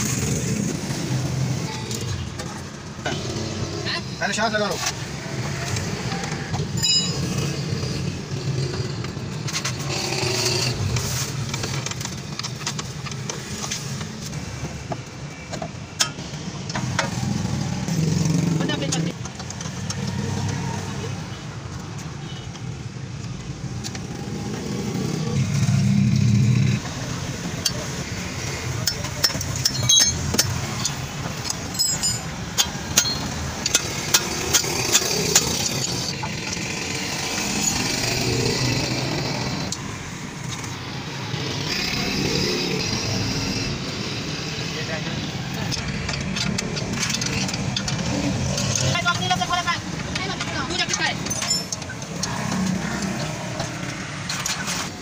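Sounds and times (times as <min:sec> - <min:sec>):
metal clinks and clicks: 0:06.2 - 0:08.9, 0:27.6 - 0:38.6, 0:45.2 - 0:54.9.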